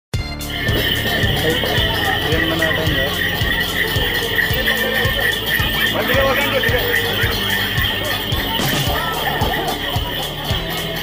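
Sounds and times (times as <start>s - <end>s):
crowd voices: 0.2s - 11.0s
ringing cymbals: 0.4s - 11.0s
quick steady drum beat: 0.5s - 11.0s.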